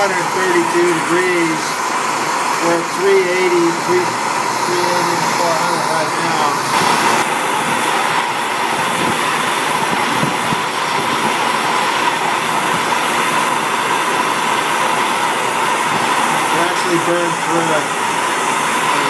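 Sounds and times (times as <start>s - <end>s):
propane torch hissing: 0.0s - 19.0s.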